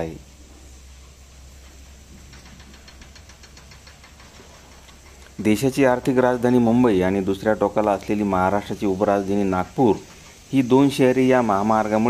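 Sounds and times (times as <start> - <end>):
rapid high ticking: 0.8 - 12.0.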